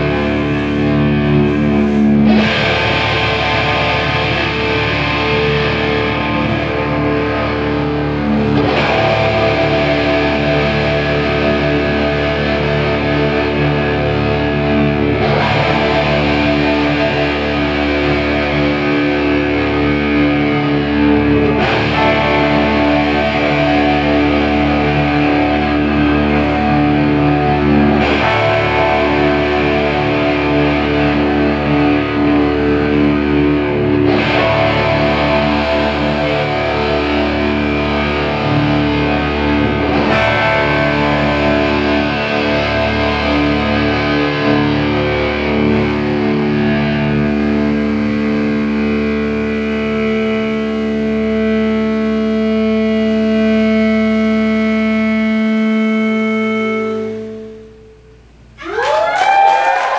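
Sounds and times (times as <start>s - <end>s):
drums: 0.0s - 51.6s
distorted electric guitars drone chord: 0.0s - 58.7s.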